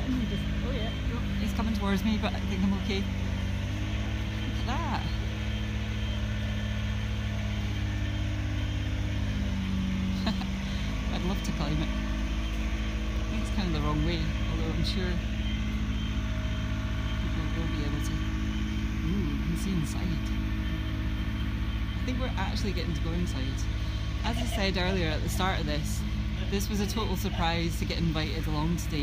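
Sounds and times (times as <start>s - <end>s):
machinery engine humming: 0.0s - 29.0s
voices talking: 0.0s - 29.0s.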